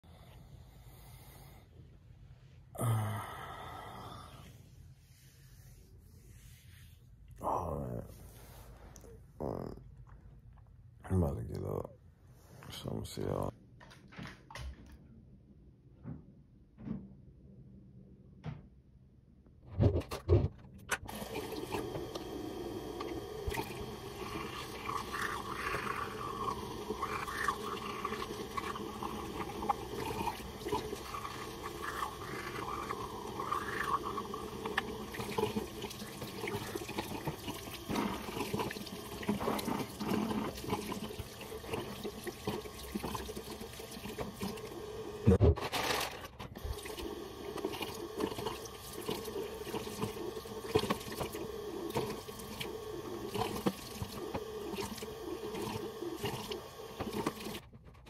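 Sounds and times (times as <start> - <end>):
tap water running into sink: 21.1 - 45.4, 46.6 - 57.6.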